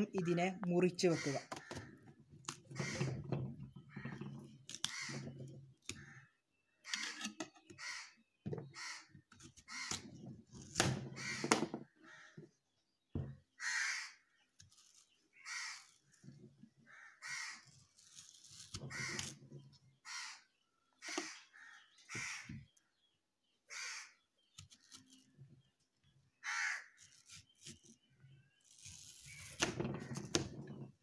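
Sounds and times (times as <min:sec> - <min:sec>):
crows cawing: 0:01.1 - 0:02.1, 0:04.9 - 0:05.2, 0:05.9 - 0:07.1, 0:07.8 - 0:10.0, 0:11.1 - 0:12.5, 0:13.6 - 0:14.3, 0:15.4 - 0:15.9, 0:16.8 - 0:17.6, 0:18.9 - 0:19.3, 0:20.0 - 0:22.7, 0:23.7 - 0:24.2, 0:26.4 - 0:27.0
knife peeling mango: 0:14.5 - 0:16.1, 0:17.6 - 0:19.4, 0:26.9 - 0:30.4.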